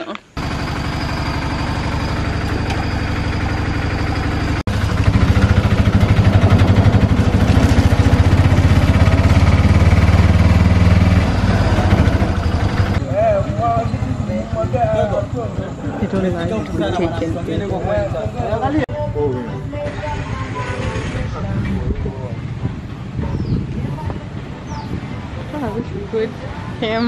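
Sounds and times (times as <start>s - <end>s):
auto-rickshaw engine running: 0.4s - 25.8s
voices on a street: 12.6s - 27.0s.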